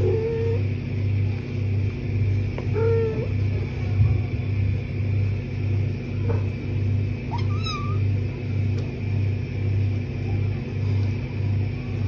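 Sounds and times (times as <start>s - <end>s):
pulsing low rumble: 0.0s - 12.0s
kitten mewing: 2.7s - 3.6s, 7.2s - 8.2s.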